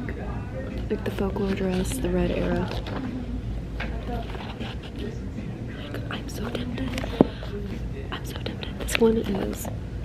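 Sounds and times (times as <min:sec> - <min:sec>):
woman speaking softly: 0:00.8 - 0:02.9, 0:08.1 - 0:09.7.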